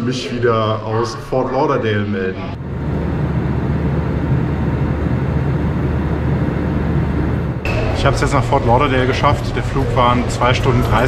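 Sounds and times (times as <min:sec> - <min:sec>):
jet cabin engine rumble: 0:02.6 - 0:10.4.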